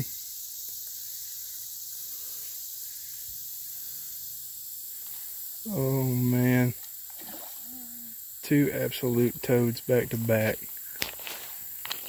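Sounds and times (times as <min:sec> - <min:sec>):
high-pitched outdoor hiss: 0:00.0 - 0:12.0.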